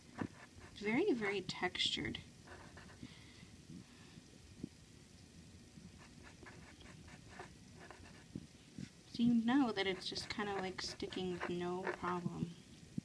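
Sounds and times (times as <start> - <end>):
pen scratching on paper tape: 6.0 - 8.3, 9.8 - 12.2.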